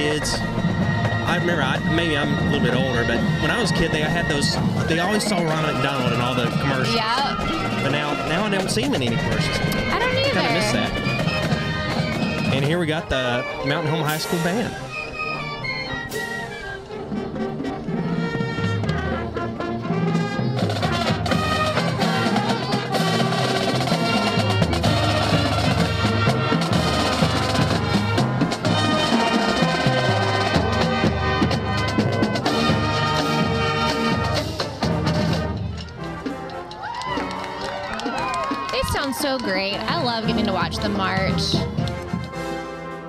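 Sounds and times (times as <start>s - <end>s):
marching band playing: 0.0s - 43.0s.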